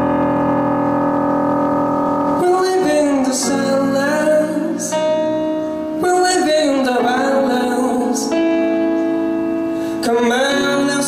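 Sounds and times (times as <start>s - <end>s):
keyboard chord ringing: 0.0s - 11.0s.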